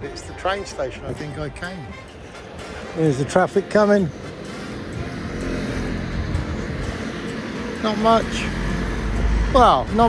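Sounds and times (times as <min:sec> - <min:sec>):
motor scooter driving past: 0:04.1 - 0:09.9
car driving past: 0:04.1 - 0:10.0.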